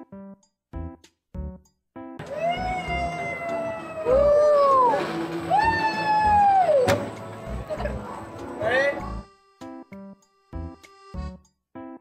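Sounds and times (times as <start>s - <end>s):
people howling: 2.2s - 8.2s.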